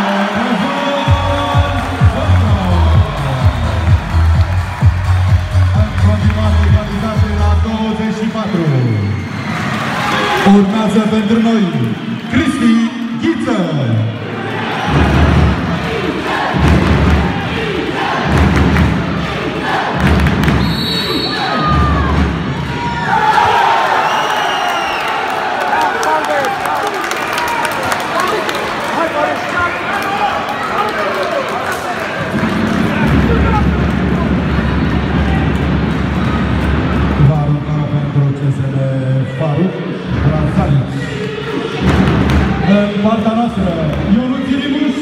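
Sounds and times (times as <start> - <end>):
crowd shouting and whistling: 0.0 - 18.4, 19.1 - 32.3, 39.2 - 43.1
low rhythmic thumps: 1.1 - 7.7, 14.9 - 20.6
referee's whistle: 8.3 - 9.6, 20.5 - 21.7, 23.9 - 25.2.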